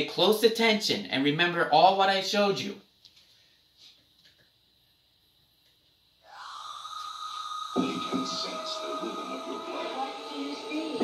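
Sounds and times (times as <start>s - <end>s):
faint steady whine: 2.8s - 11.0s.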